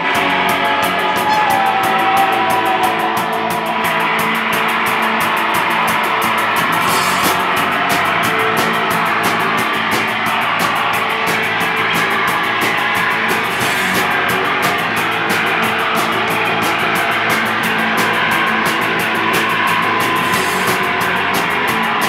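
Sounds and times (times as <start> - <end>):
drums fast steady beat: 0.0 - 22.0
electric guitars: 0.0 - 22.0.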